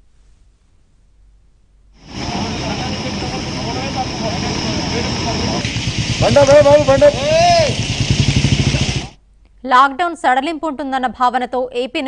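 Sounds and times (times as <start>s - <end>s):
vehicle engine running: 2.0s - 9.2s
man calling out: 6.2s - 7.8s.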